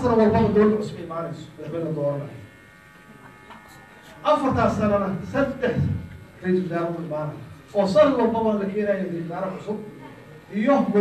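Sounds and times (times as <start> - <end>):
man speaking: 0.0 - 2.5, 4.2 - 11.0
faint mains hum: 0.0 - 11.0.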